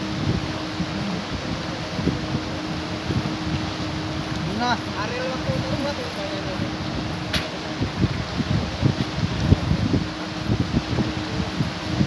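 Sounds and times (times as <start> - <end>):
paddlewheel aerators splashing: 0.0 - 12.0
wind buffeting microphone: 0.0 - 12.0.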